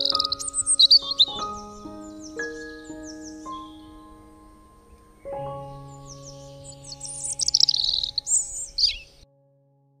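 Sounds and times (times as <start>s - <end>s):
birds chirping: 0.0s - 9.2s
music with long held tones: 0.0s - 10.0s.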